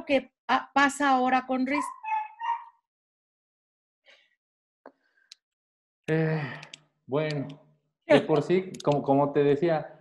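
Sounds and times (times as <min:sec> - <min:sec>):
dog whining: 0:01.8 - 0:02.8.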